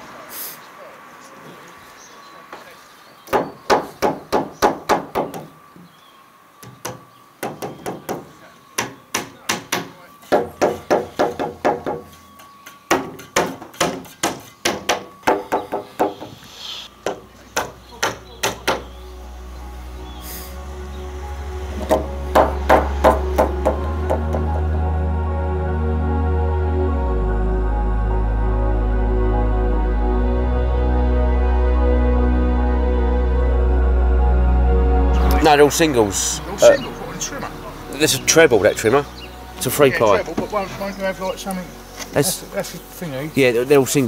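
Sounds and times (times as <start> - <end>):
hammer driving nails into wood: 12.9 - 16.3
background music: 16.4 - 44.0.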